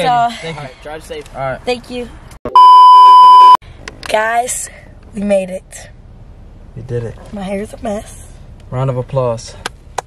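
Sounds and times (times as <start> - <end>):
high electronic bleep: 2.5 - 3.6.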